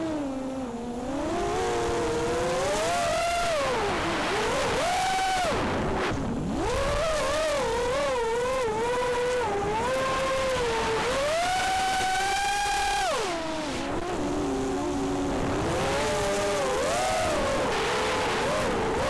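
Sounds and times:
quadcopter motors whining: 0.0s - 19.0s
wind noise: 0.0s - 19.0s.

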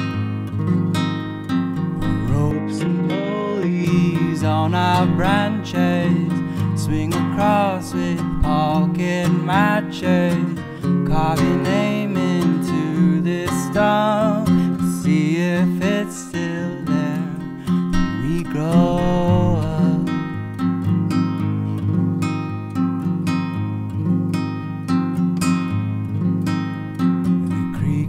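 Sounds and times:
acoustic guitar strumming: 0.0s - 28.0s
man singing: 2.0s - 20.4s, 27.6s - 28.0s.

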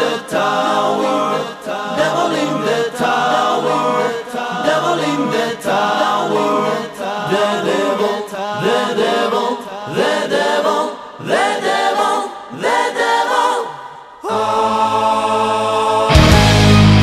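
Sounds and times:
choir singing: 0.0s - 17.0s.

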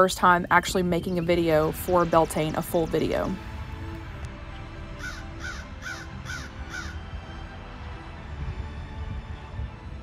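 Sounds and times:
quiet background music: 0.0s - 10.0s
crow cawing: 5.0s - 7.0s.

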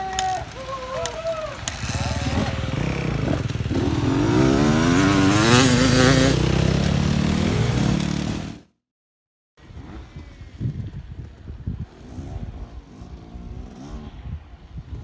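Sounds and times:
dirt bike engines revving: 0.0s - 8.7s, 9.6s - 15.0s.

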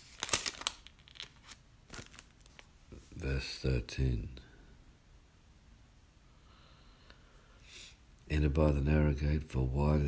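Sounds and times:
paper pages rustling: 0.0s - 2.7s.

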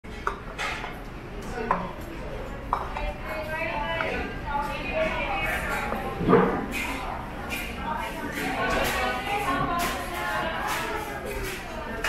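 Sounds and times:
voices: 0.3s - 12.0s.

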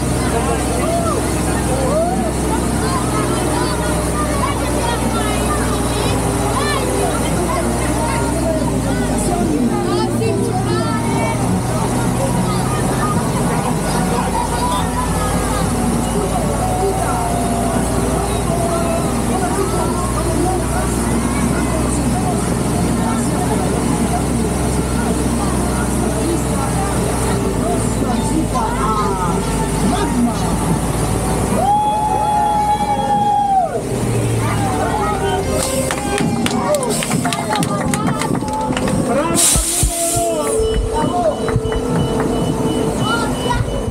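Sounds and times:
ride vehicle humming: 0.0s - 43.9s
voices chattering: 0.0s - 43.9s.

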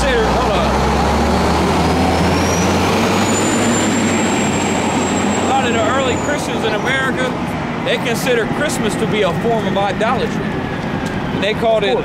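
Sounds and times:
heavy vehicle engine rumble: 0.0s - 12.0s.

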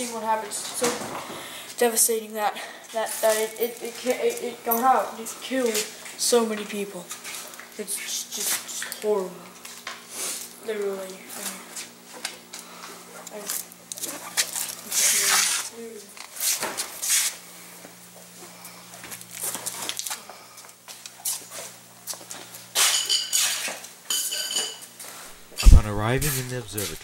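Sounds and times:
faint steady hum: 24.6s - 27.0s.

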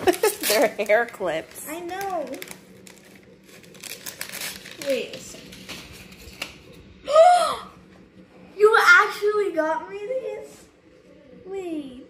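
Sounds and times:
plastic packaging crinkling: 0.0s - 6.7s.

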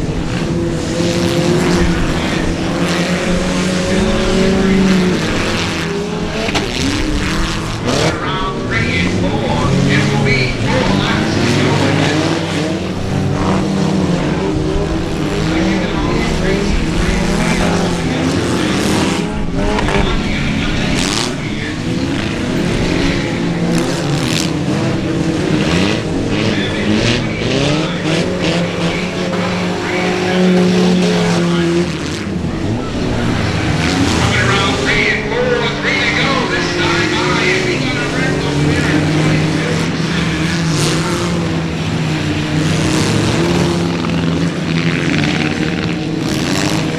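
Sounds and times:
race car engines racing: 0.0s - 46.9s.

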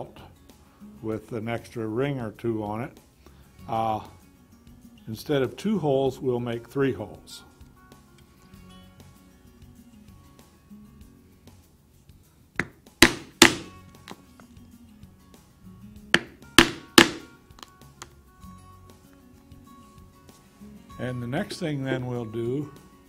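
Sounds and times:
quiet background music: 0.0s - 23.0s
mallet striking leather punch: 12.6s - 14.2s, 16.2s - 17.7s.

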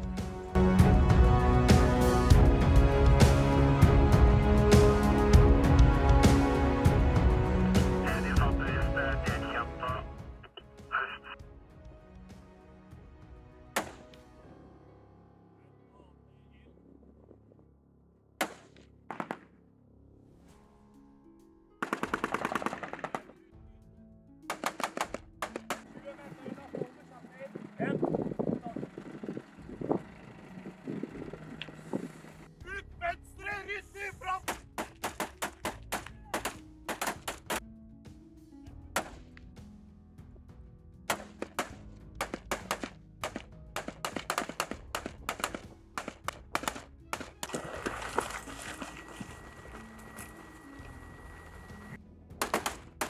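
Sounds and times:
music with low sustained tone: 0.0s - 34.0s, 34.6s - 53.0s
rapid rifle fire: 21.8s - 23.3s, 24.5s - 25.8s, 41.1s - 47.3s, 52.4s - 53.0s.

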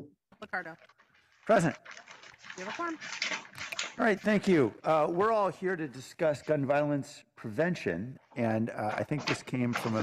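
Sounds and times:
person speaking: 3.9s - 10.0s.

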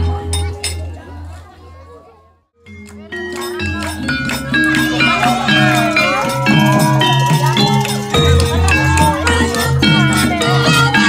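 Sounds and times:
gamelan metal notes: 2.6s - 11.0s
gliding melody line: 2.6s - 11.0s.

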